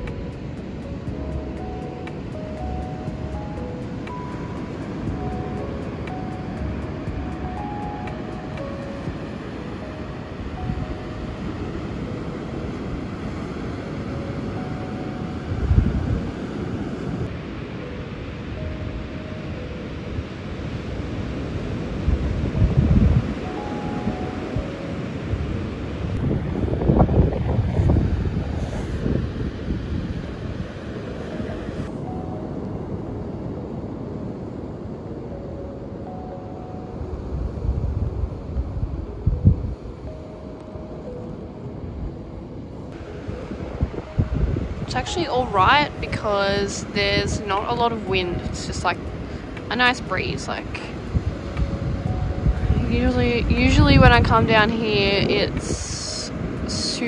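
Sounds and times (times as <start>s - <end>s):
soft background music: 0.0s - 57.0s
wind rumbling on microphone: 0.0s - 57.0s
waves breaking: 42.6s - 57.0s.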